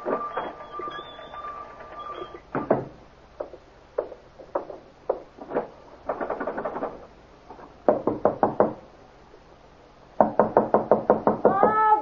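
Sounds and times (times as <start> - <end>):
knocking on a door: 2.5 - 5.3, 7.9 - 8.8, 10.2 - 11.9.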